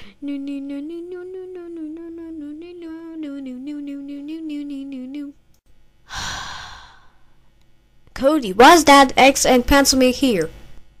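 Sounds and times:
breathy exhale: 6.1 - 7.4.

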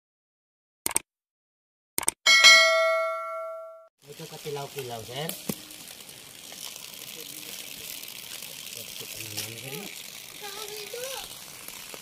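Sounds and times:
short clicks: 2.0 - 2.2
bell-like chime ringing: 2.3 - 3.9.

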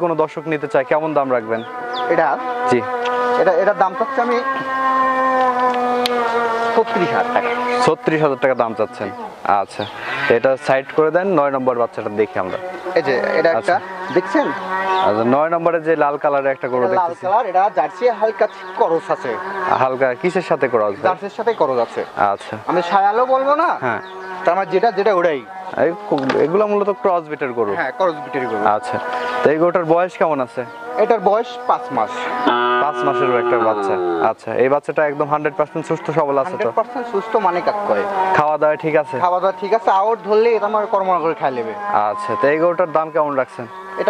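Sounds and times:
insect buzzing: 1.3 - 9.3, 12.5 - 15.1, 17.2 - 20.5, 32.3 - 34.5
cattle mooing: 1.6 - 8.3, 12.5 - 15.2, 16.8 - 20.3, 32.2 - 34.7, 35.8 - 37.2.

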